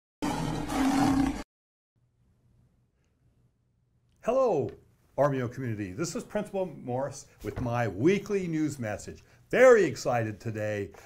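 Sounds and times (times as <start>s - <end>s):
big cat roar: 0.2s - 1.4s.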